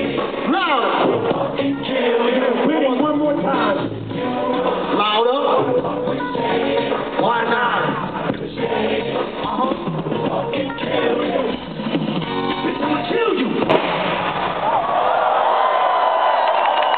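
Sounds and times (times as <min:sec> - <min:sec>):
rap music over loudspeakers: 0:00.0 - 0:13.7
crowd cheering and screaming: 0:14.4 - 0:16.9.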